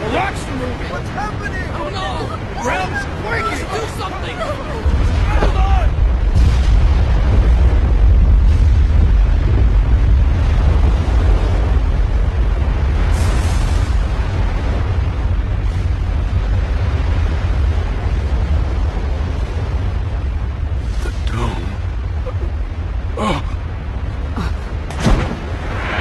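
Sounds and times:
deep explosion-like rumble: 4.8s - 26.0s.

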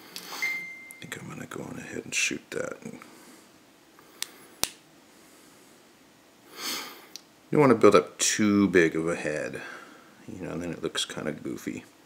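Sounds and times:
short breath-like hiss: 6.5s - 7.2s.

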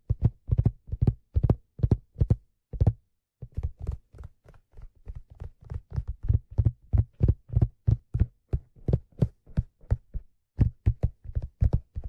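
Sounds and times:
fingertips tapping on leather hat: 0.0s - 12.0s.

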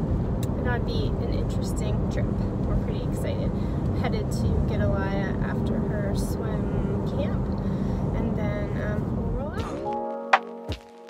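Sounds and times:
vehicle road and engine noise: 0.0s - 9.8s
woman talking: 0.4s - 9.9s.

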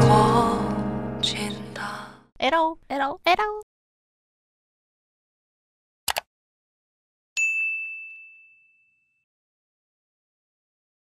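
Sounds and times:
bell-like notification ding: 7.4s - 9.2s.

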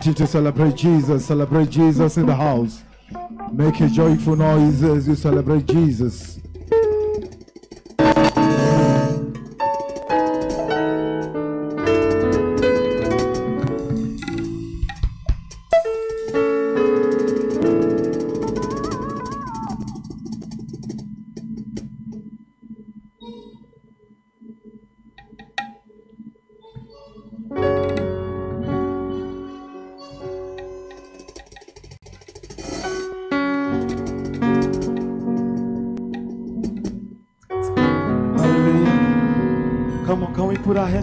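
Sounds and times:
keyboard chords: 0.0s - 31.2s, 33.0s - 41.0s
knocks and clicks: 5.1s - 22.3s, 25.1s - 25.9s, 30.6s - 37.2s
keyboard chord with bending pitch: 8.0s - 14.7s, 33.4s - 41.0s
faint steady high tone: 22.3s - 31.0s.

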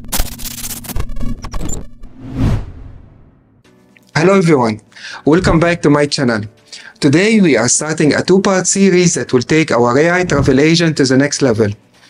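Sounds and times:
whoosh sound effect: 2.1s - 3.3s.

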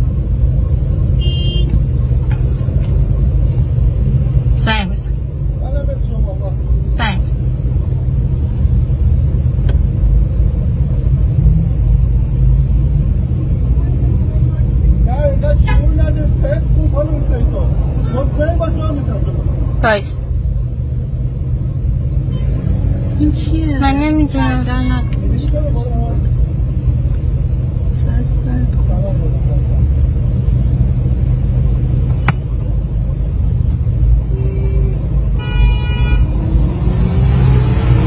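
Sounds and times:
traffic engines rumbling: 0.0s - 38.0s
people talking: 23.2s - 26.2s.

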